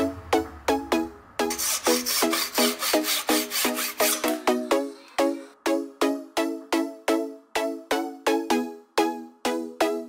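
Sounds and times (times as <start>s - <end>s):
background music with plucked beat: 0.0s - 10.0s
pencil being rasped: 1.5s - 4.4s.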